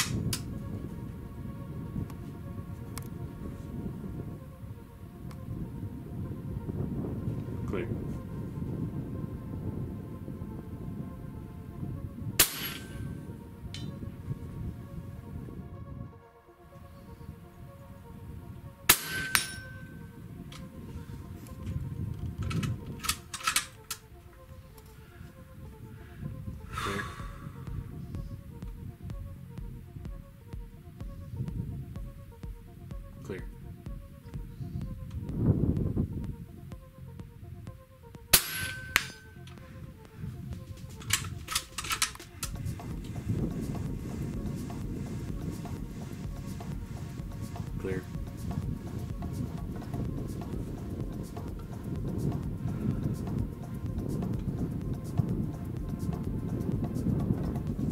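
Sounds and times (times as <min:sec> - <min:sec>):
background music: 0:00.0 - 0:57.9
air rifle shots: 0:12.4 - 0:13.0, 0:18.9 - 0:19.6.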